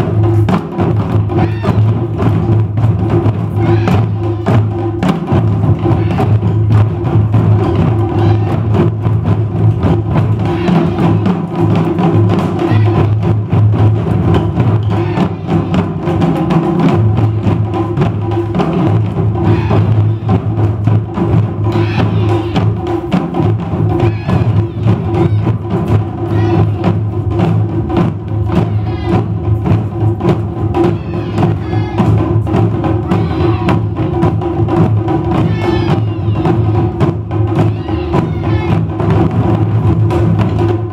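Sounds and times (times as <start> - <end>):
drum ensemble playing: 0.0 - 40.9.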